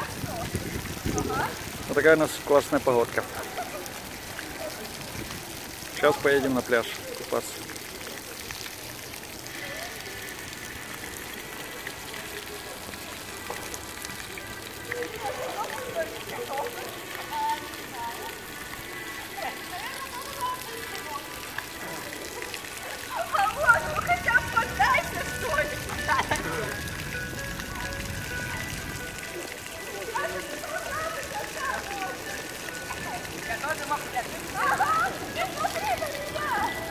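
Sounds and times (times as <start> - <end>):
fountain water splashing on tiles: 0.0 - 36.9
people's voices: 0.0 - 36.9
background music: 23.3 - 35.5.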